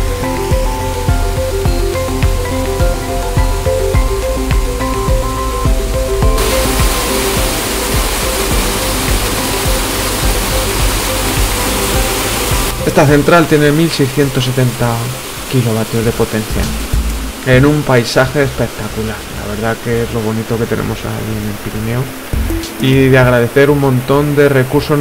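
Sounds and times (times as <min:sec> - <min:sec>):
water rushing down intake: 0:00.0 - 0:23.3
background music with bass line: 0:00.0 - 0:25.0.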